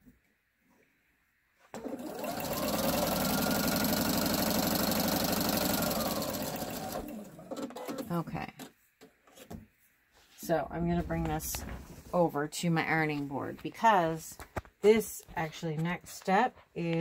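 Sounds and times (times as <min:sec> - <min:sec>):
sewing machine stitching: 0:01.7 - 0:08.6.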